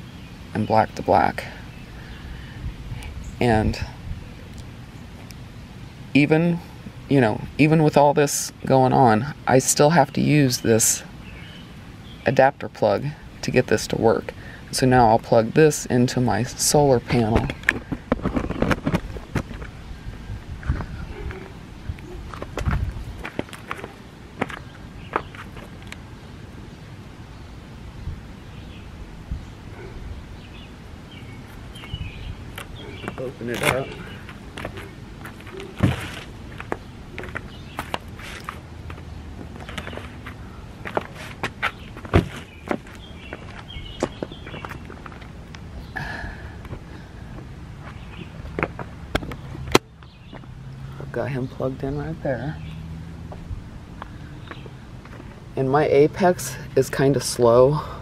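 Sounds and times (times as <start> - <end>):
footsteps in flip-flops on pavement: 20.5 - 26.0, 31.5 - 45.7, 46.6 - 50.6.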